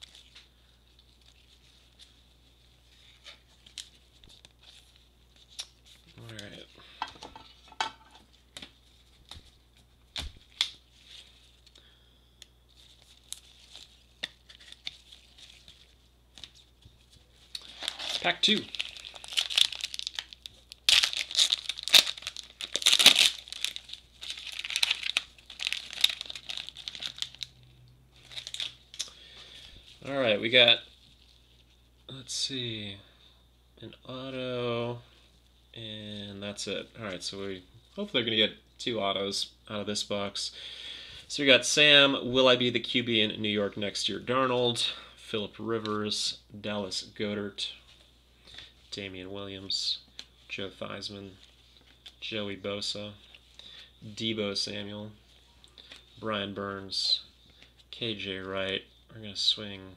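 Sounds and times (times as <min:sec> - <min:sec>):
foil wrapper tearing and crinkling: 0:17.6 - 0:27.5, 0:28.2 - 0:29.0.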